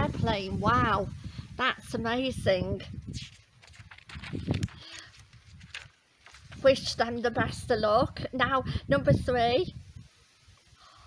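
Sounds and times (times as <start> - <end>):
woman breathing: 4.7 - 5.4, 10.8 - 11.0.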